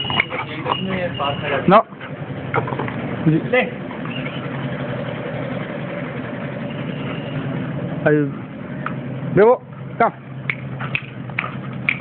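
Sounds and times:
steady motor hum: 0.0s - 12.0s.

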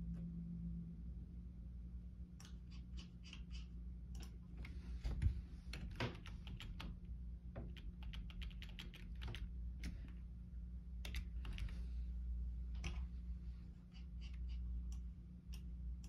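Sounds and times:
steady low hum: 0.0s - 16.0s
computer keyboard keys clicking: 5.7s - 7.0s, 7.6s - 10.2s, 11.0s - 11.8s.

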